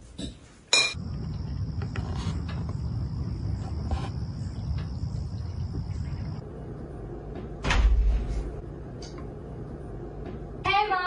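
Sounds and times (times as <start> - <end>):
door shutting with heavy thud: 7.6 - 8.6.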